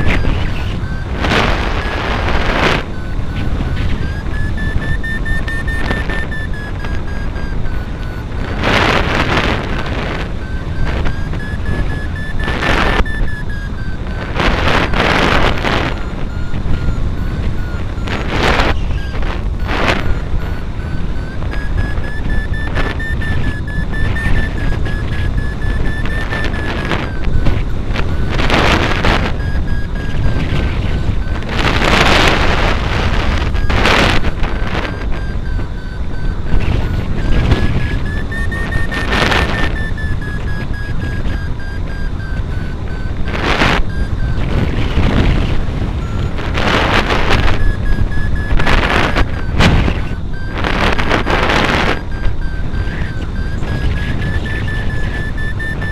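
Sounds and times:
variometer beeping rapidly: 0.0s - 55.9s
wind rushing over microphone: 0.0s - 55.9s.

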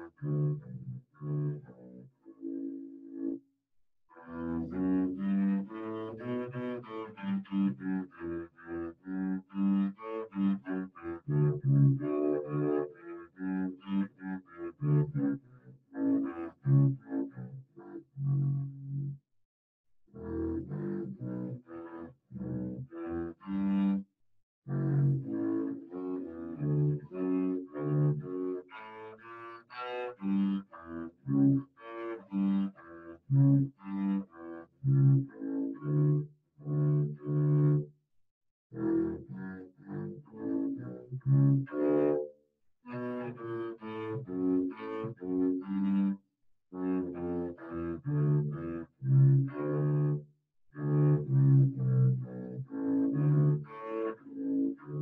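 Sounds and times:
bowed double bass melody: 0.0s - 2.6s, 4.3s - 15.4s, 16.0s - 19.2s, 20.2s - 24.0s, 24.7s - 31.6s, 32.3s - 37.9s, 38.8s - 42.3s, 43.1s - 46.1s, 46.8s - 50.2s, 50.8s - 55.0s.

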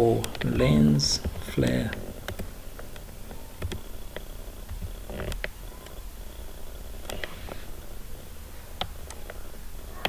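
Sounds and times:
low steady hum: 0.0s - 10.0s
computer keyboard keystrokes: 1.2s - 6.0s.

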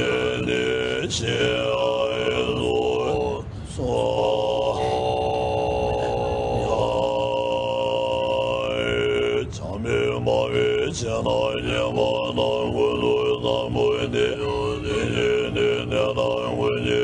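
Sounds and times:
monks throat-singing: 0.0s - 17.0s.

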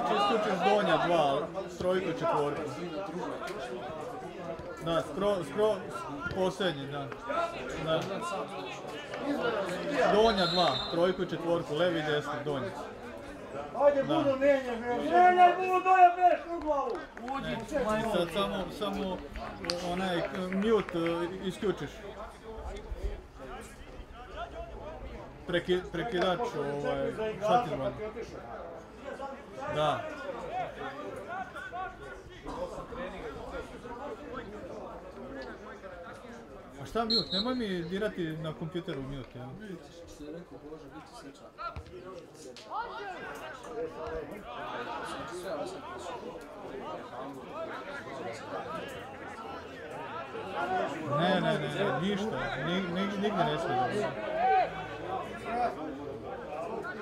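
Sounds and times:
indistinct chatter: 0.0s - 57.0s.

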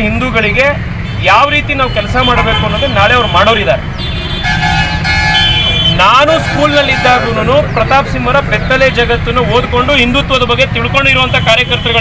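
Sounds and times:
low rumble of traffic: 0.0s - 12.0s
vehicle horn: 1.9s - 7.4s.

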